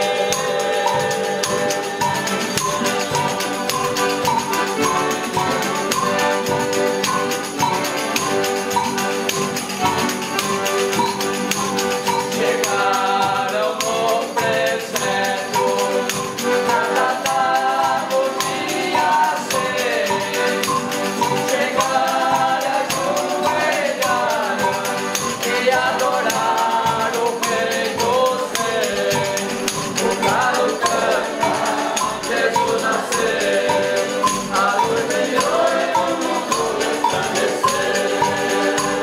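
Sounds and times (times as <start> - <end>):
men singing in chorus: 0.0 - 8.8, 12.0 - 39.0
button accordion: 0.0 - 39.0
guitars: 0.0 - 39.0
steady percussion beat: 0.0 - 39.0
strummed string instruments: 0.0 - 39.0.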